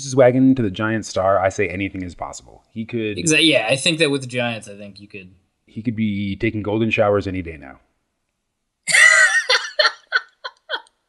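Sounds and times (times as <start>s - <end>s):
man laughing: 8.9s - 10.8s.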